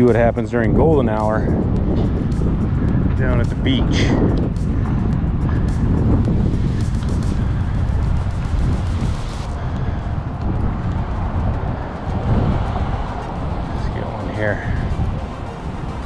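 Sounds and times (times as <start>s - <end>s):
wind buffeting microphone: 0.0s - 16.0s
motorcycle engine rumble: 0.9s - 16.0s.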